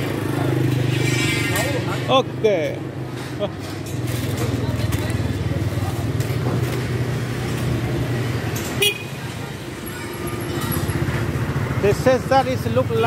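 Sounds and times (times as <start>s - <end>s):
chatter of shoppers: 0.0s - 13.0s
low hum of traffic: 0.0s - 13.0s.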